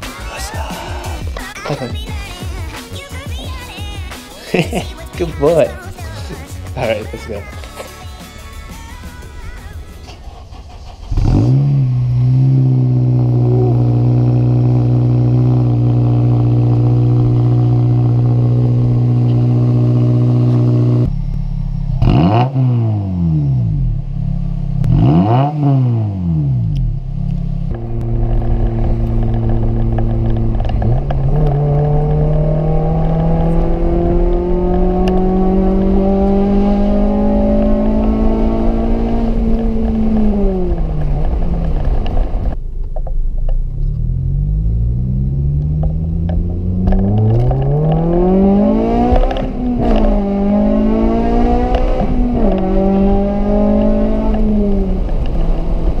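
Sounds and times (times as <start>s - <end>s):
car engine revving: 4.3s - 56.0s.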